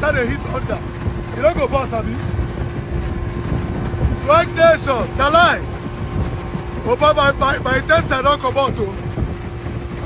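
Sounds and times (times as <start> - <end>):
motorboat engine running: 0.0 - 10.0
wind buffeting microphone: 0.0 - 10.0.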